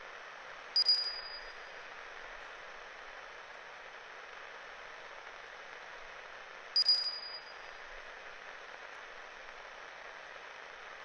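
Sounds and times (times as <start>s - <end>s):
steady soft hiss: 0.0s - 11.0s
bright metallic ping: 0.8s - 1.6s, 6.8s - 7.5s.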